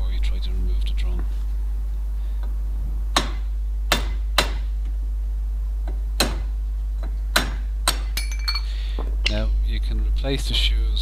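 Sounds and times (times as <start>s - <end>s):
hammer striking metal: 3.2s - 4.7s
ringing metal clinks: 8.2s - 8.8s.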